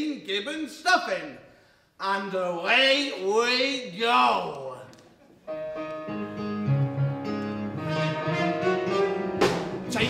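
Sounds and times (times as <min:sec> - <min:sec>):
live band playing: 0:05.5 - 0:10.0
sharp band hits: 0:09.4 - 0:09.8.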